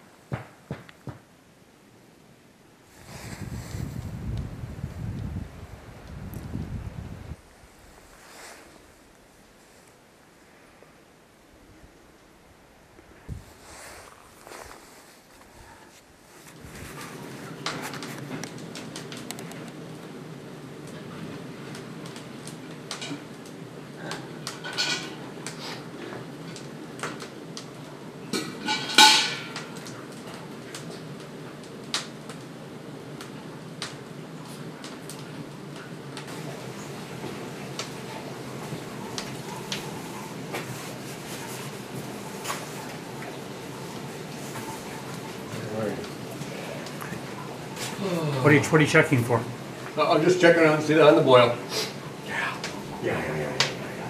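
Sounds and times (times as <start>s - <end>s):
wind buffeting microphone: 3.0s - 7.4s
steel pail knocks and clank: 28.4s - 29.7s.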